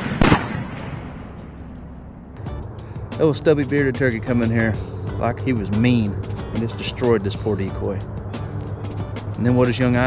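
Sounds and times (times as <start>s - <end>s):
shotgun blasts echoing: 0.0s - 1.7s.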